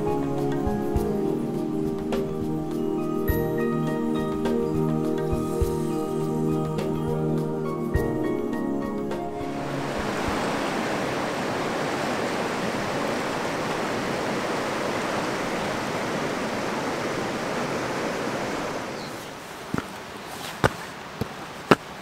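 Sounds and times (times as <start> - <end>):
music: 0.0 - 10.5
river water rushing: 9.4 - 22.0.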